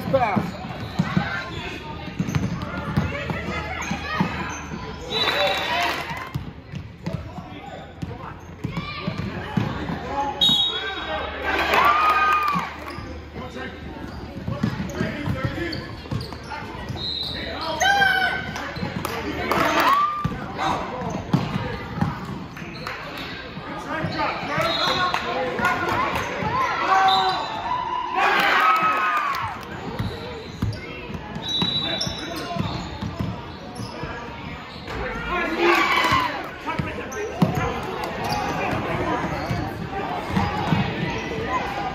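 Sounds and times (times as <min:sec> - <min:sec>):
sneakers squeaking: 0:00.0 - 0:11.9, 0:12.5 - 0:27.8, 0:29.4 - 0:41.9.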